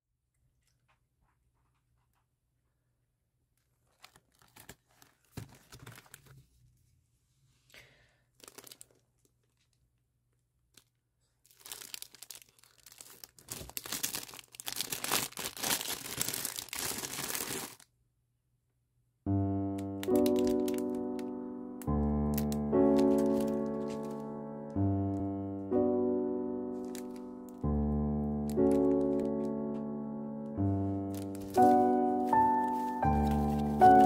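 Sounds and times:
plastic packaging crinkling: 3.7 - 6.4, 8.4 - 9.9, 10.7 - 17.8, 19.8 - 24.7, 26.7 - 27.7, 28.3 - 30.2, 31.0 - 34.0
piano background music: 19.3 - 34.0.

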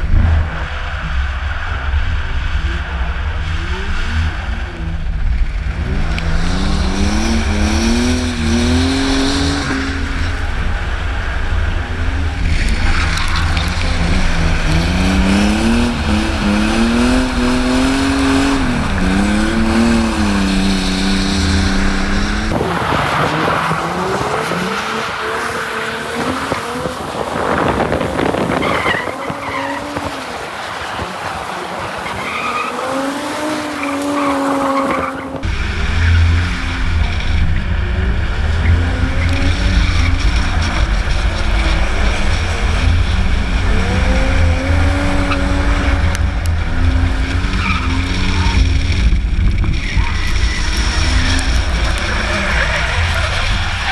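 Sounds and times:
wind rumble on microphone: 0.0 - 30.2
car engines revving: 0.0 - 53.9
tyres squealing and skidding: 5.8 - 36.4, 38.6 - 53.9.

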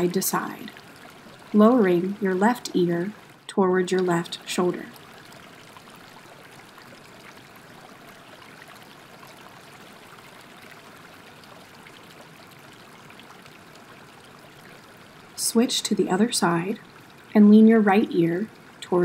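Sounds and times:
flowing water rushing: 0.0 - 19.0.

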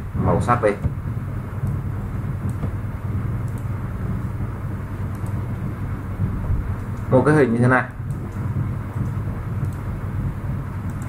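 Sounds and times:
room noise: 0.0 - 11.0
steady low hum: 0.0 - 11.0
faint clicks: 3.4 - 3.7, 5.1 - 5.4, 9.0 - 9.9.

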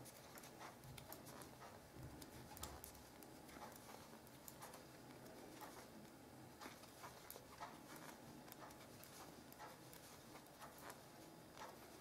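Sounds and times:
knitting needles clicking: 0.0 - 12.0.

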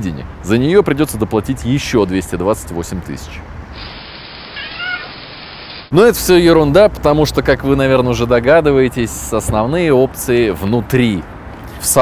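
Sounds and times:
steady hiss: 3.6 - 6.1
cat meowing: 4.5 - 5.2.

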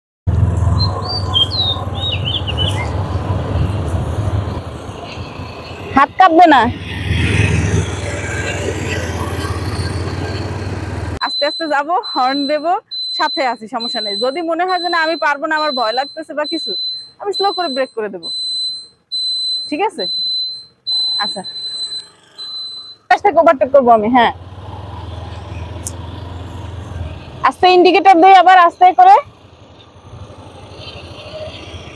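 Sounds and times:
birds chirping: 0.7 - 6.1
electronic buzzer beeping: 11.3 - 23.2.

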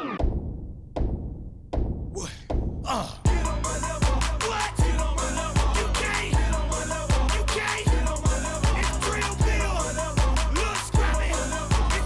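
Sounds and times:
shouted vocal ad-libs: 2.2 - 12.0.

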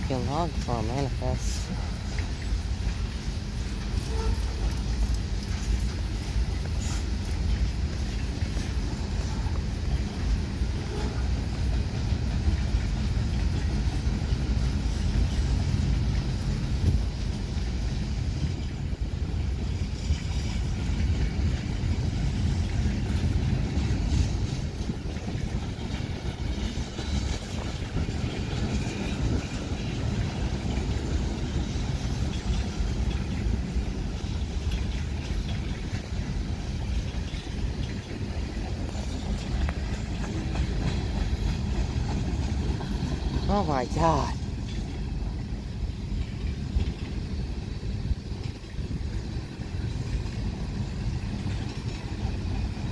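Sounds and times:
freight train cars rolling past: 0.0 - 52.9.

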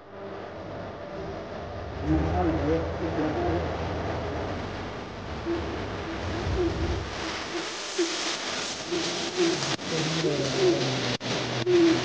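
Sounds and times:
low rumble: 0.0 - 8.0
hiss: 5.5 - 12.0.

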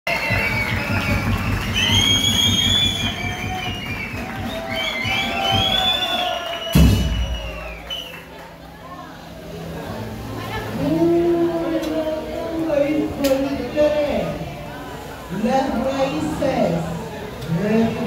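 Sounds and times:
fast drum beat: 0.3 - 6.0
loud drum hit: 6.7 - 7.6.

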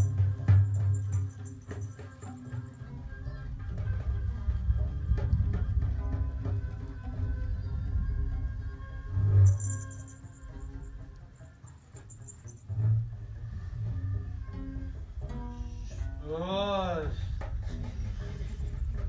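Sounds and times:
shaker rattle: 0.0 - 3.0, 9.1 - 12.9
hand drums playing: 0.0 - 19.0
steady held tones: 0.0 - 19.0.

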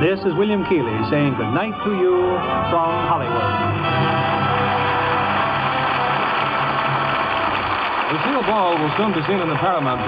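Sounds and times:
orchestra playing held chords: 0.0 - 10.0.

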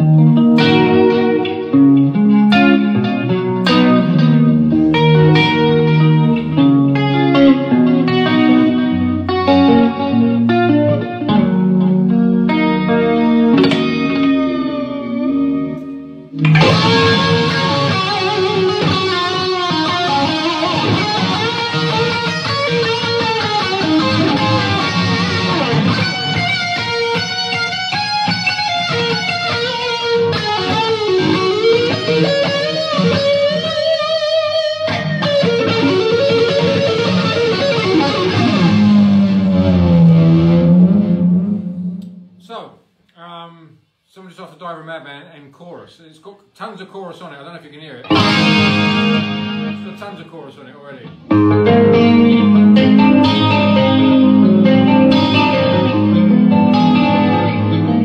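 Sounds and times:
electric guitar with chorus: 0.0 - 42.4, 48.0 - 58.0.

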